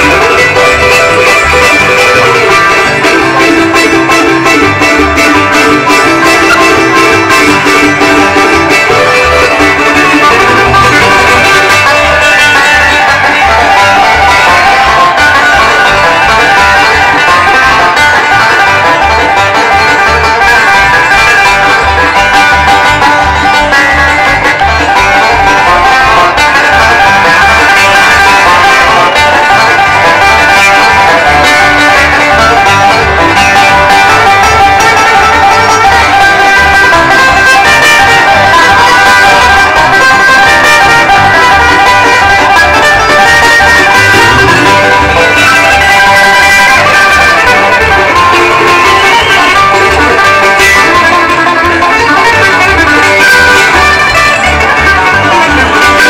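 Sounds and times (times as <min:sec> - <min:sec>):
acoustic guitar: 0:00.0 - 0:56.0
banjo: 0:00.0 - 0:56.0
fiddle: 0:00.0 - 0:56.0
mandolin: 0:00.0 - 0:56.0
upright bass: 0:00.0 - 0:56.0.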